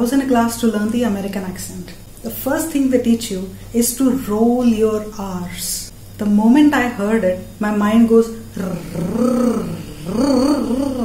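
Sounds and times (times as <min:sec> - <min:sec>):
woman trilling rolled r: 0:08.6 - 0:11.0.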